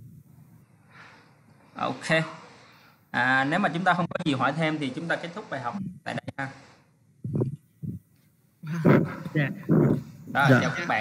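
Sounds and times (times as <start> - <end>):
people talking over video call: 1.8 - 7.5, 8.6 - 11.0.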